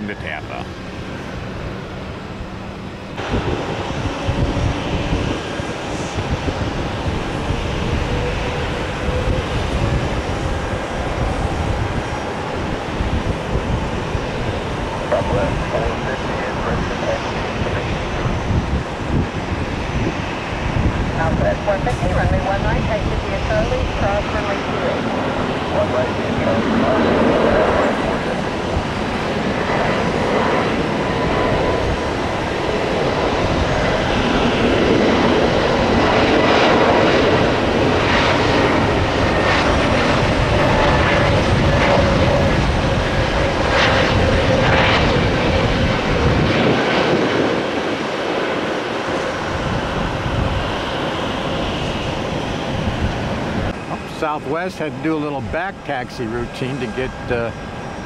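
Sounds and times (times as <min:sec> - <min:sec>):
jet engines roaring on takeoff: 0:00.0 - 0:58.0.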